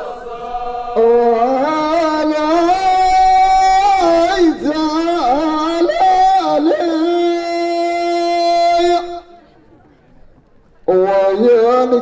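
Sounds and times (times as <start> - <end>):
man chanting into a microphone: 1.0 - 9.4, 10.9 - 12.0.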